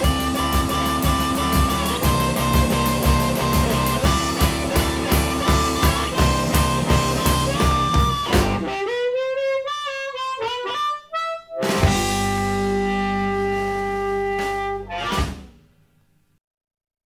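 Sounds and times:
drum beat: 0.0 - 8.8, 11.6 - 15.5
blues harmonica bent notes: 0.0 - 15.4
electric blues band: 0.0 - 15.6.

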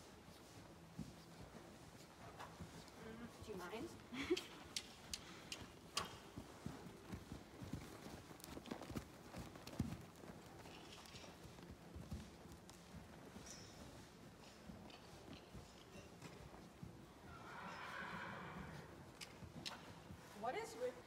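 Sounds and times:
hoofbeats on sand: 0.0 - 21.0.

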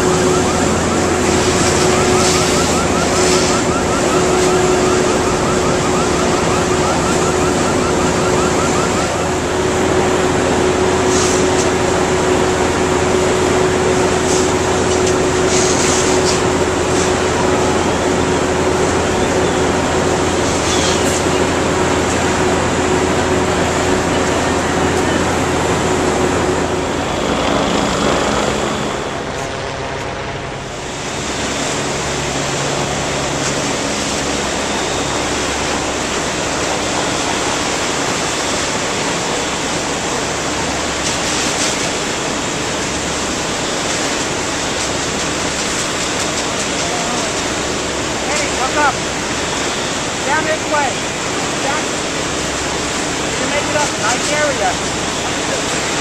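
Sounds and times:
rushing water streams: 0.0 - 29.2
engines and pumps running: 0.0 - 56.0.

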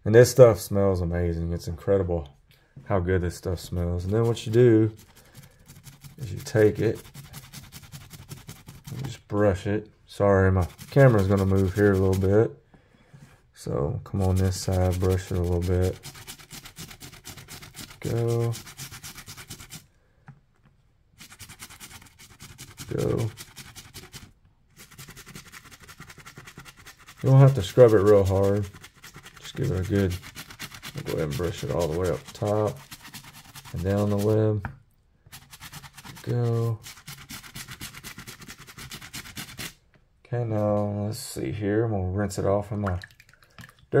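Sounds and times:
brush scrubbing wet leather: 3.4 - 9.6, 10.6 - 12.4, 14.2 - 19.8, 21.2 - 34.5, 35.3 - 39.8, 40.5 - 41.0.

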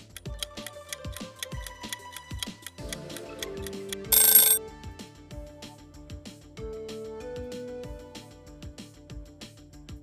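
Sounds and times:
music with ticking beat: 0.0 - 4.6
ringing bell sound effect: 4.0 - 4.6.

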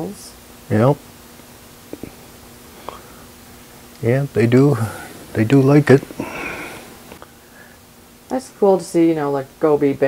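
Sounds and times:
person breathing: 2.0 - 3.3, 4.8 - 5.3, 6.1 - 7.8.

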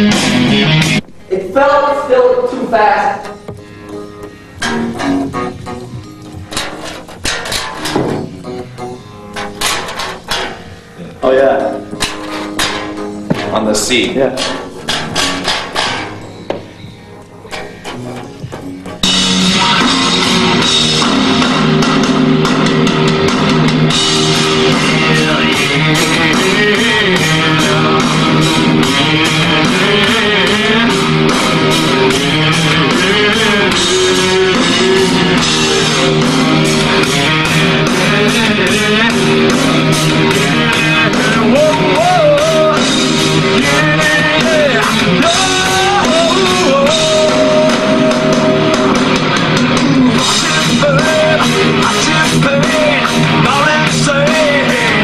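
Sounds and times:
rock band playing: 0.0 - 1.2, 2.7 - 55.0.

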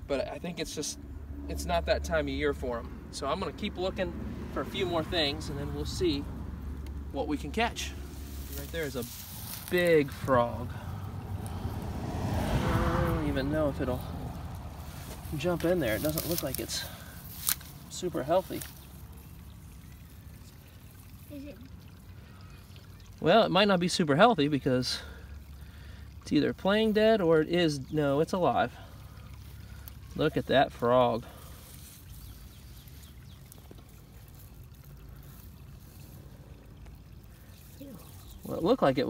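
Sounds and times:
stream trickling faintly: 0.0 - 39.0.

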